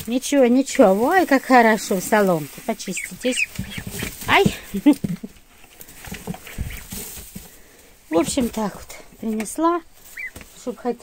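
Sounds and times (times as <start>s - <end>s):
ducklings moving on straw: 0.0s - 11.0s
ducklings peeping: 2.8s - 4.8s, 6.1s - 6.9s, 10.1s - 10.4s.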